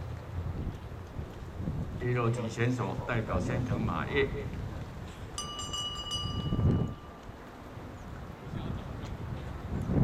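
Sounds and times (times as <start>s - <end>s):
wind rumble on microphone: 0.0s - 10.0s
electronic start bell chime: 5.4s - 7.2s.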